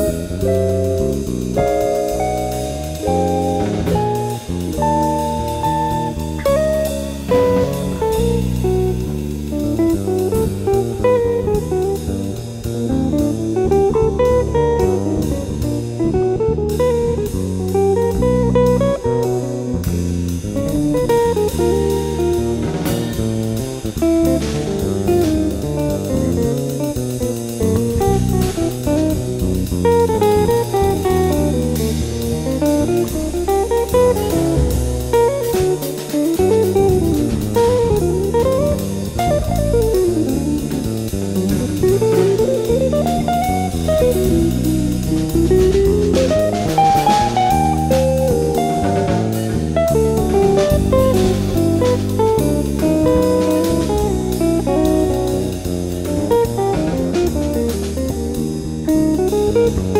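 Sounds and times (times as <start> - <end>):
cymbal-driven drums: 0.0 - 16.0, 16.6 - 59.9
fast guitar lines: 0.0 - 59.9
jazz trio playing: 0.0 - 59.9
walking bass: 0.0 - 59.9.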